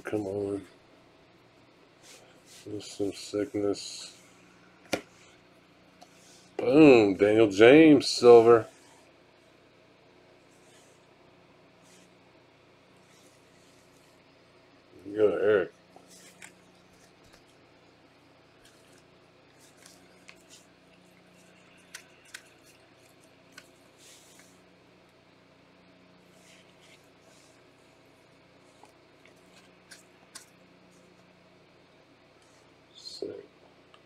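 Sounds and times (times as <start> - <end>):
faint steady hum: 0.0 - 34.0
gloved hands handling a card: 16.0 - 24.6, 26.2 - 31.3.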